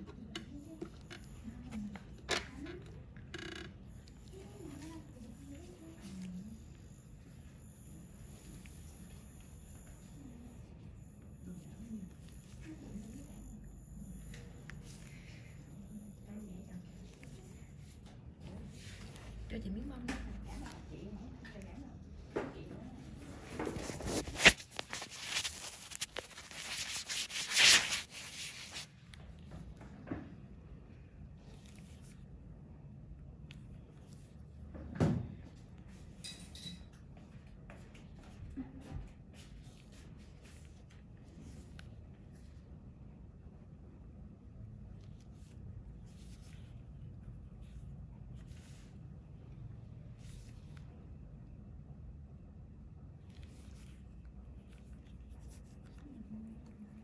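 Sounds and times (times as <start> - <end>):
low room hum: 0.0 - 57.0
faint scratching and rubbing: 0.5 - 29.0, 44.9 - 51.0, 53.2 - 57.0
scratchy rubbing on microphone: 22.9 - 29.0.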